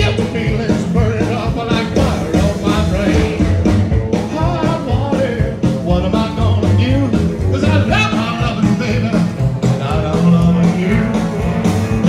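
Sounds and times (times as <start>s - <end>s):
rock and roll band playing: 0.0s - 12.0s
slapped upright bass: 0.0s - 12.0s.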